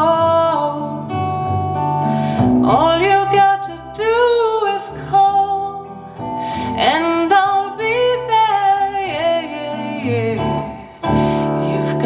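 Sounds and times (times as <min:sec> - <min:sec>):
acoustic guitar music: 0:00.0 - 0:12.0
person singing: 0:00.0 - 0:12.0.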